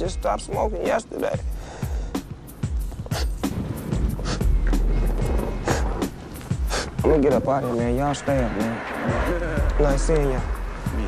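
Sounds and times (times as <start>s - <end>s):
background music: 0.0s - 11.0s
skateboard wheels rolling: 2.8s - 11.0s.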